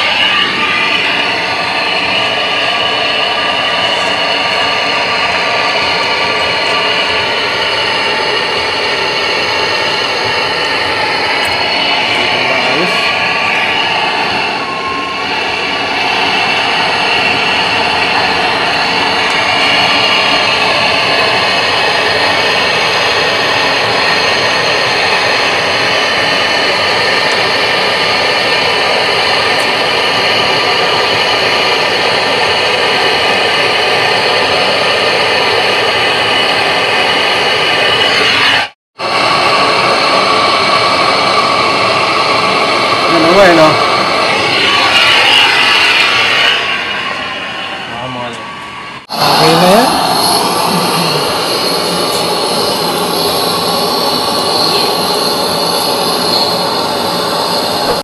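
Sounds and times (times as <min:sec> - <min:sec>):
gas torch hissing: 0:00.0 - 0:58.0.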